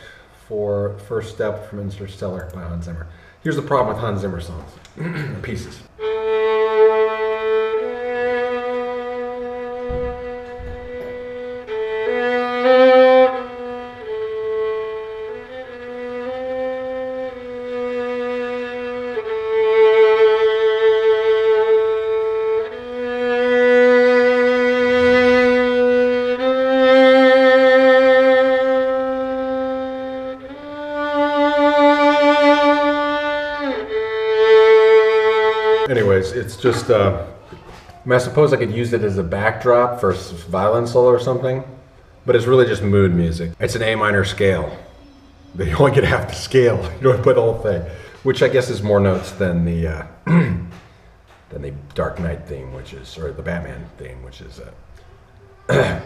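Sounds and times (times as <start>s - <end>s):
solo bowed violin: 6.0s - 36.8s.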